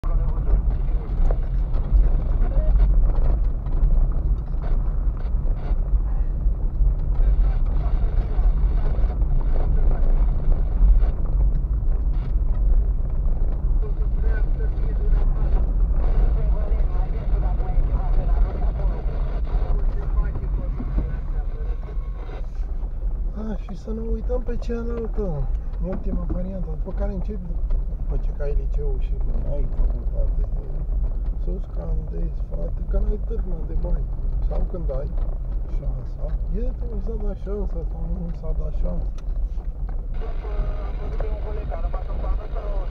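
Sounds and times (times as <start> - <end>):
engine and tyres rumbling: 0.0 - 42.9.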